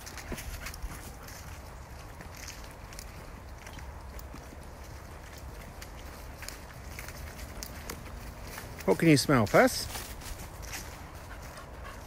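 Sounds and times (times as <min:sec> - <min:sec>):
dog panting: 0:00.0 - 0:03.3, 0:10.0 - 0:12.0.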